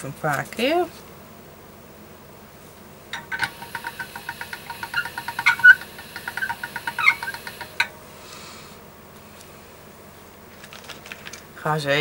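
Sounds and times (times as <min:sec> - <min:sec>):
pasta machine crank squeaky clicks: 0:03.2 - 0:07.9.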